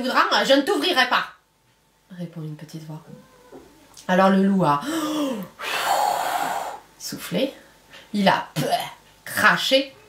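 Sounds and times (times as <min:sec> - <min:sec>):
woman blowing out hard: 0:05.6 - 0:06.8.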